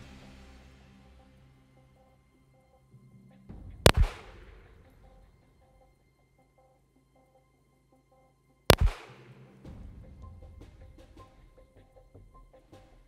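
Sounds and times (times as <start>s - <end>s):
pistol shots with echo: 3.9s - 4.7s, 8.7s - 9.3s.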